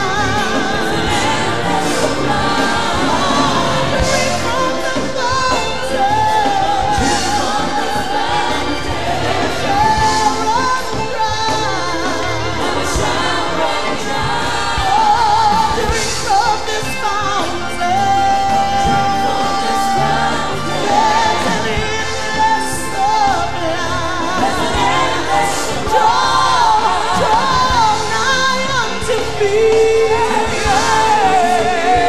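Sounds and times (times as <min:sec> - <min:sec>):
gospel choir with band: 0:00.0 - 0:32.0
lead voice singing with vibrato: 0:00.0 - 0:32.0.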